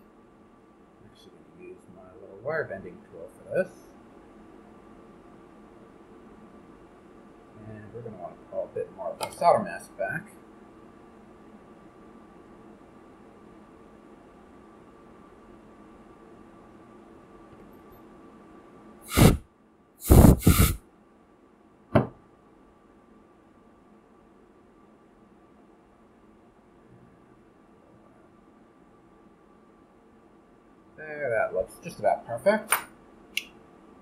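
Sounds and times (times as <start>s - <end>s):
faint hum with high tone: 0.0s - 34.0s
rushing breath-like air bursts: 19.1s - 19.4s, 20.0s - 20.8s.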